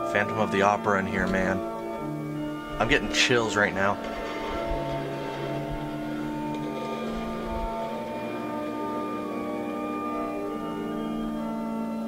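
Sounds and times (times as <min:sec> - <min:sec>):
organ playing sustained chord: 0:00.0 - 0:12.0.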